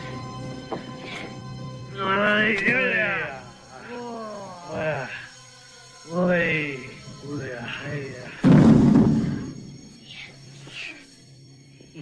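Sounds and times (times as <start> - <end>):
background music: 0.0 - 12.0
voice: 2.0 - 5.3, 6.1 - 8.5
loud thud: 8.4 - 9.5.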